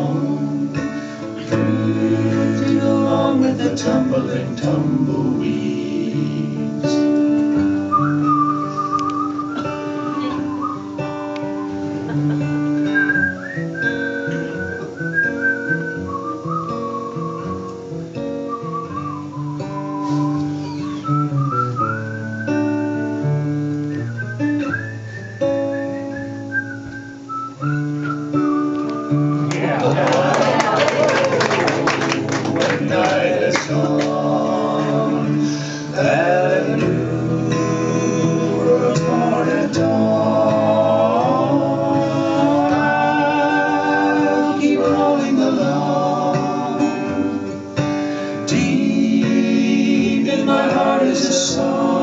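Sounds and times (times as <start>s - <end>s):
acoustic guitar chords: 0.0s - 52.0s
whistled melody: 7.7s - 12.0s, 12.7s - 29.5s.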